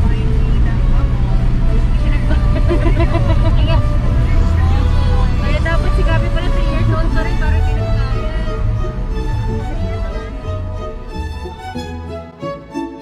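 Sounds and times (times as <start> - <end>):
voices: 0.0 - 11.2
car driving rumble: 0.0 - 12.8.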